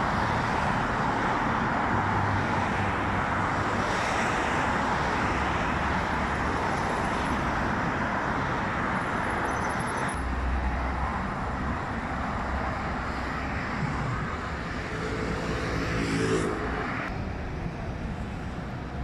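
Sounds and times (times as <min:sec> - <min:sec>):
highway traffic rushing: 0:00.0 - 0:19.0
pitched vehicle hum: 0:00.0 - 0:19.0.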